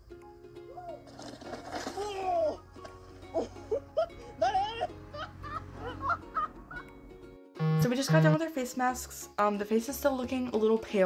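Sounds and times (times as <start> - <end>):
soundtrack with sliding notes: 7.6 - 8.5
woman speaking: 7.6 - 11.0.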